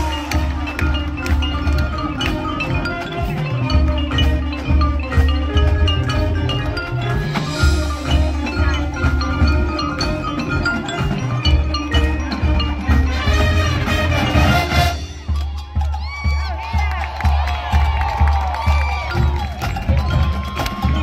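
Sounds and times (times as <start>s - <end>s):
brass and sousaphones: 0.0s - 15.3s
marimba and mallet percussion: 0.0s - 21.0s
steady drum beat: 0.0s - 21.0s.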